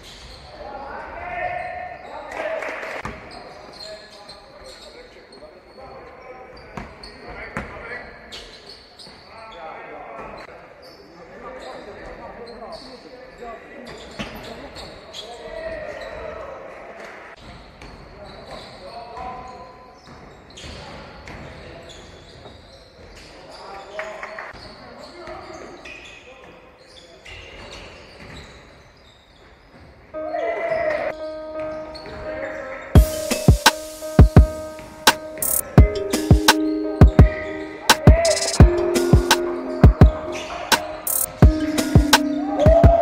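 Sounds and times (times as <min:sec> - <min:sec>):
voices calling out in hall: 0:30.2 - 0:43.0
music with heavy drum hits: 0:33.0 - 0:43.0.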